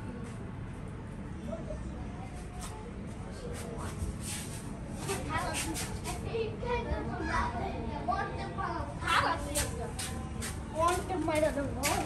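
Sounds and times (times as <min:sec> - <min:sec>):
low background noise: 0:00.0 - 0:12.0
chatter of voices: 0:01.2 - 0:12.0.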